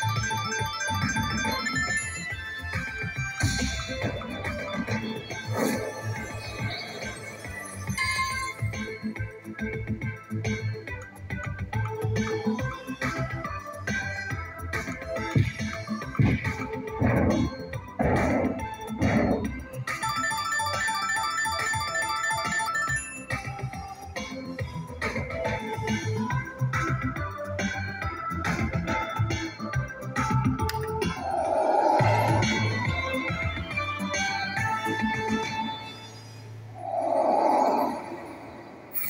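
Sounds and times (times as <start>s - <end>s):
slot machine chime jingle: 0.0s - 3.7s, 7.7s - 9.0s, 19.9s - 23.8s.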